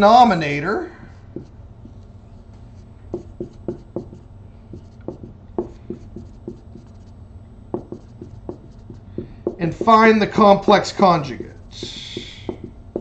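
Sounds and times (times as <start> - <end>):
marker squeaking on whiteboard: 1.4 - 10.4, 11.4 - 13.0.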